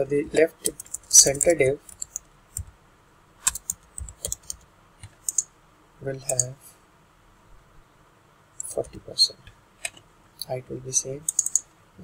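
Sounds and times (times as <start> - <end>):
computer keyboard typing: 0.3 - 2.7, 3.4 - 5.5, 6.2 - 6.6, 11.2 - 11.6.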